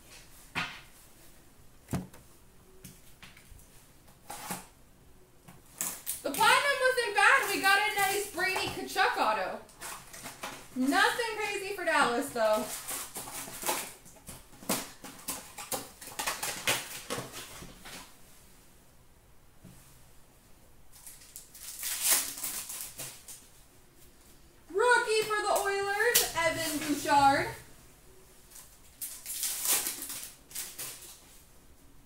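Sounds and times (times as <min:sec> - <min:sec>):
card wrappers crackling: 0:05.8 - 0:18.1, 0:20.9 - 0:23.4, 0:28.5 - 0:31.3
high-pitched wordless voice: 0:06.2 - 0:09.6, 0:10.8 - 0:12.7, 0:24.7 - 0:27.6.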